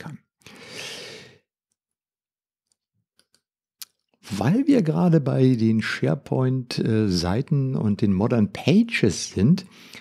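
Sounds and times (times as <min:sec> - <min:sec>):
man breathing: 0:00.4 - 0:01.5, 0:09.7 - 0:10.0.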